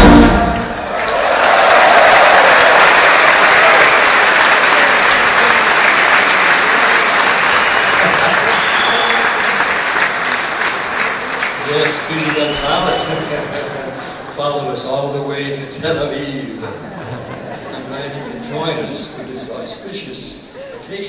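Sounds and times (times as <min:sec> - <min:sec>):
audience applauding: 0:00.0 - 0:14.9.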